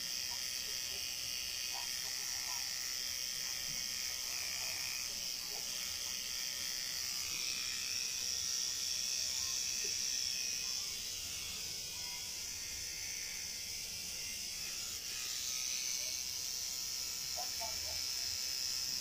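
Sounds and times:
tattoo machine buzzing: 0.0s - 19.0s.

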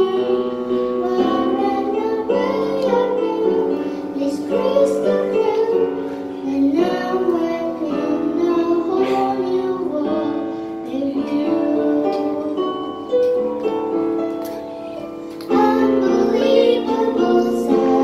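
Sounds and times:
boy singing a slow ballad: 0.0s - 13.3s, 14.4s - 18.0s
instrumental accompaniment: 0.0s - 18.0s.

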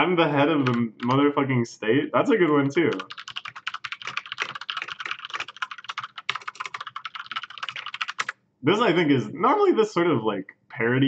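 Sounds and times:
fast typing on keyboard: 0.6s - 1.2s, 2.4s - 8.4s.

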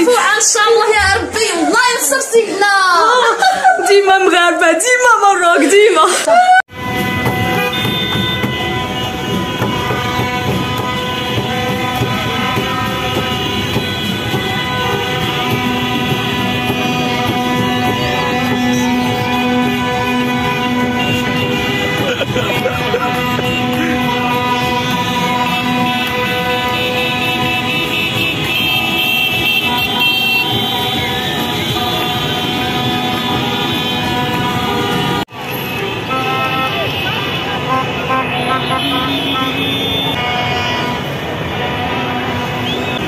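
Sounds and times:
traffic noise: 0.0s - 43.0s
car horns honking: 6.7s - 43.0s.

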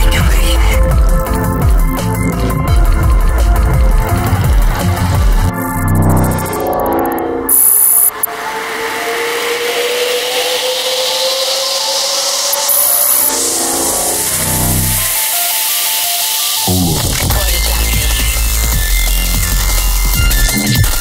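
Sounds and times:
electronic trance music: 0.0s - 21.0s
bright glitch bursts: 4.0s - 8.3s, 12.4s - 21.0s
falling pitch sweeps: 5.5s - 16.7s
thin tone gliding upward: 5.6s - 16.6s.

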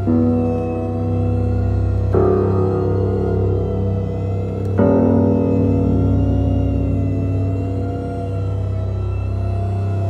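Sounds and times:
suspenseful drone music: 0.0s - 10.0s.

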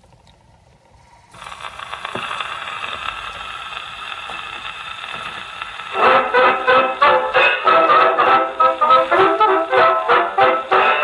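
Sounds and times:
record surface hiss and crackle: 0.0s - 11.0s
dance band with brass: 6.0s - 11.0s.

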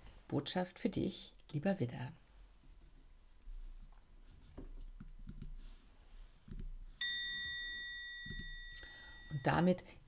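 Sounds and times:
metal chime ringing: 7.0s - 9.7s.

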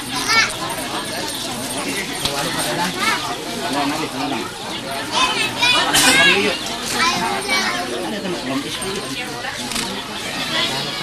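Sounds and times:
children chattering and calling out: 0.0s - 11.0s
crowd talking: 0.0s - 11.0s.

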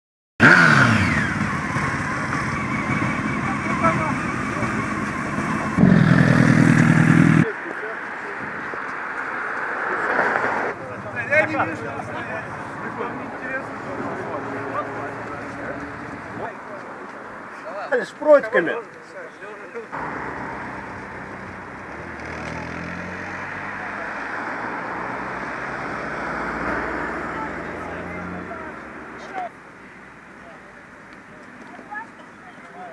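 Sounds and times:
loud engine running steadily: 0.4s - 7.4s
motorcycle engines running: 0.4s - 7.9s, 10.7s - 17.4s, 19.9s - 29.6s
voices: 0.7s - 32.9s
crowd chatter: 1.0s - 22.0s, 23.6s - 32.9s.

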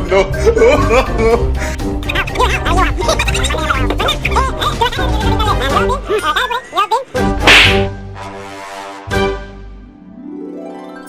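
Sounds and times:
background music: 0.0s - 11.0s
comic slap crack: 7.3s - 8.0s.

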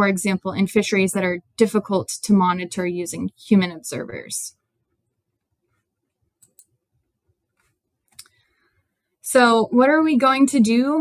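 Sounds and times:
soft clicks: 6.4s - 6.8s.

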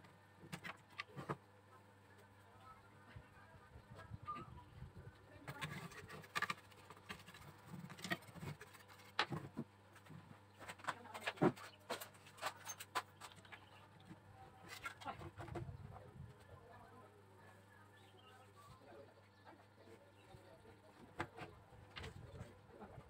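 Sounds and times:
circuit board and wires handled: 5.5s - 13.7s.

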